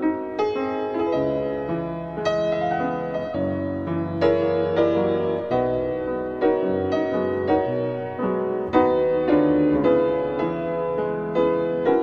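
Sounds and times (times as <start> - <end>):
gentle piano music: 0.0 - 12.0.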